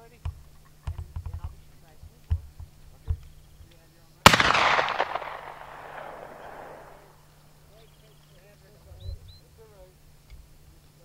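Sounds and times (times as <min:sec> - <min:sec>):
rifle shot with echo: 0:04.2 - 0:07.3.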